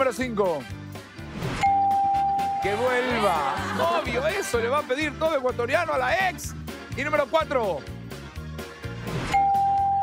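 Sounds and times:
background music: 0.0s - 10.0s
bell-like ding: 1.6s - 2.6s.

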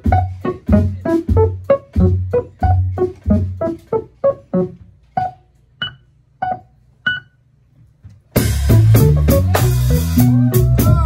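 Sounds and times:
staccato keyboard notes: 0.0s - 7.3s, 8.4s - 11.0s.

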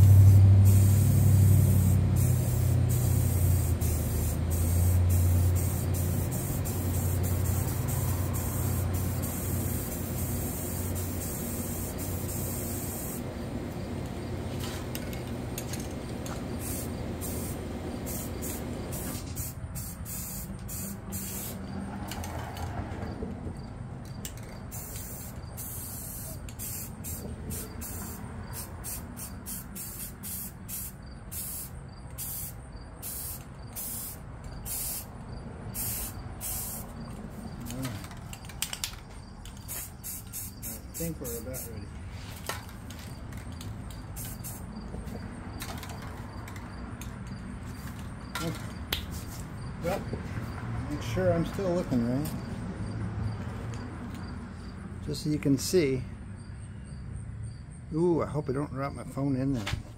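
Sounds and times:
spray paint cans hissing: 0.0s - 22.3s, 24.2s - 50.6s.

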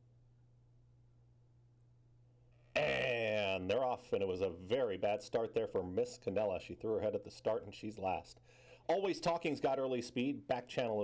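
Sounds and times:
faint low hum: 0.0s - 11.0s
race caller speaking: 2.8s - 11.0s.

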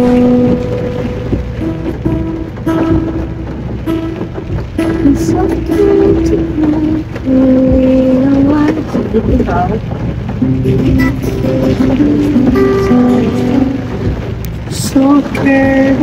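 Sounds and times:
woman singing unaccompanied: 4.9s - 9.9s, 12.6s - 14.0s, 14.7s - 16.0s.

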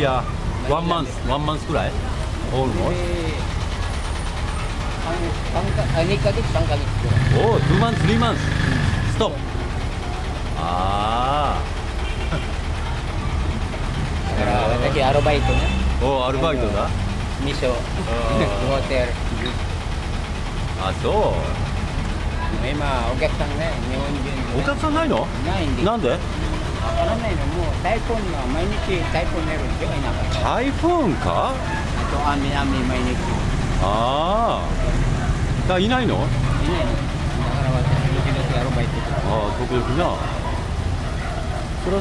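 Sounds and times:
heavy vehicle engine running: 0.0s - 42.0s
men's voices: 0.0s - 42.0s
street traffic rumble: 0.0s - 42.0s.

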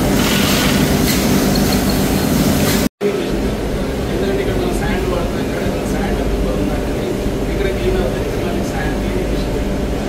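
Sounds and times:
factory machinery running: 0.0s - 10.0s.

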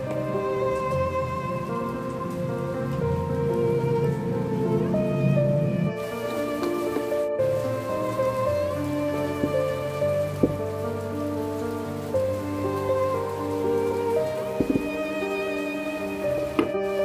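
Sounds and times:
bowed string music: 0.0s - 17.0s
rain-like hiss: 0.0s - 17.0s.

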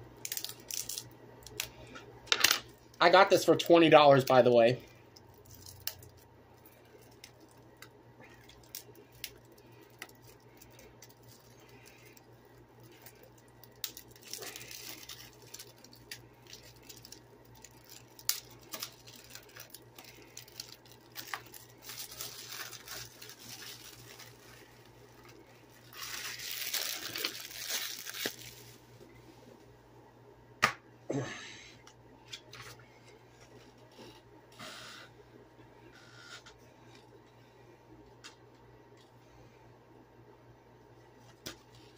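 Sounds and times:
crinkling: 4.2s - 28.9s.

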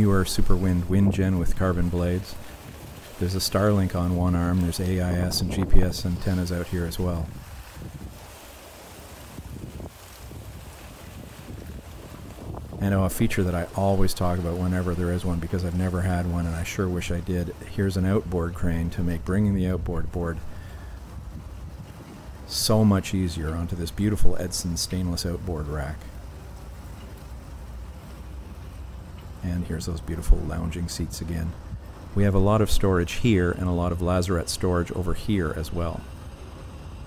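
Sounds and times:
man's voice: 0.0s - 2.4s, 3.2s - 7.4s, 12.8s - 20.4s, 22.5s - 26.1s, 29.4s - 31.6s, 32.2s - 36.1s
wind rumbling on microphone: 0.0s - 37.0s.

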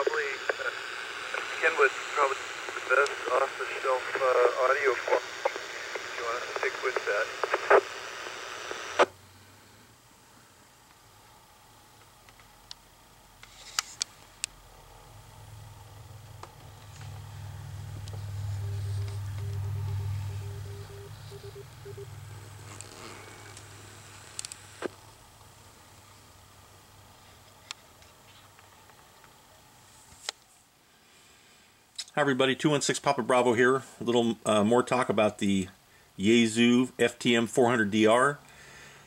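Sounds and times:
voice over two-way radio: 0.0s - 8.0s
burst of radio noise: 0.0s - 9.1s, 18.2s - 24.9s
radio hiss: 0.0s - 9.8s, 17.0s - 25.1s
steady low hum: 0.0s - 30.0s
morse code beeps: 18.5s - 22.8s.

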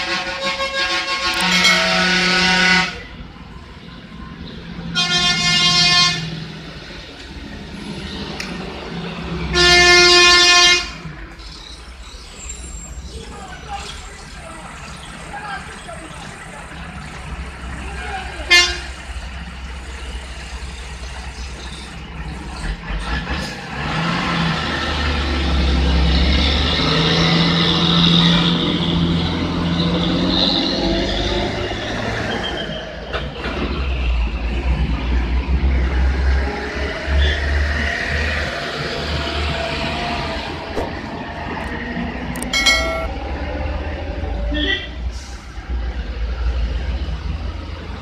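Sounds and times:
heavy diesel engines rumbling: 0.0s - 48.0s.

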